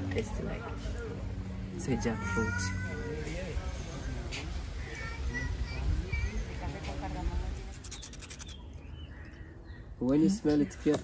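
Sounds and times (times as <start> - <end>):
knife scraping root: 7.6 - 9.4
faint bird chirps: 7.8 - 10.0.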